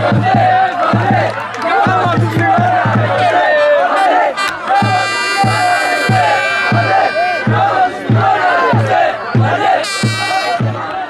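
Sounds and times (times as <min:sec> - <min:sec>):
drum beat: 0:00.0 - 0:03.4, 0:04.4 - 0:10.9
crowd chanting: 0:00.0 - 0:11.0
horn long note: 0:03.2 - 0:08.4, 0:09.8 - 0:10.7.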